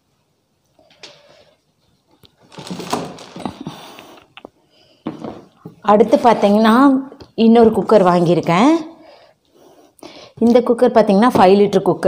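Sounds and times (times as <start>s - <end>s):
clatter and rustle of objects handled: 1.8s - 4.5s.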